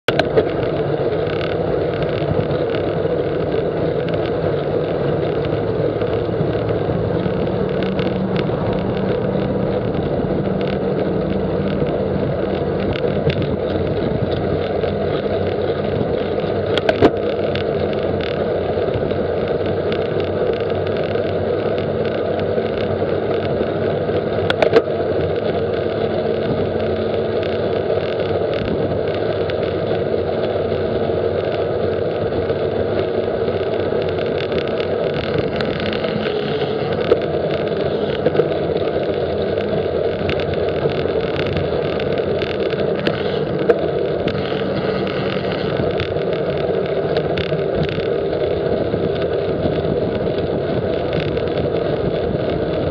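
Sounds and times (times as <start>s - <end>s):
rushing wind and road noise: 0.0s - 52.9s.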